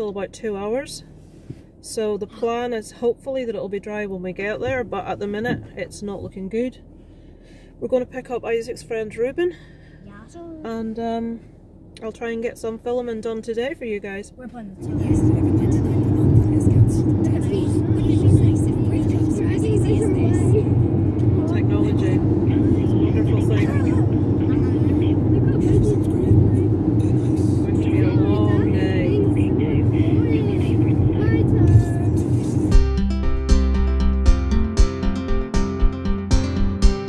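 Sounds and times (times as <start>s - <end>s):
car road and engine rumble: 0.0s - 37.0s.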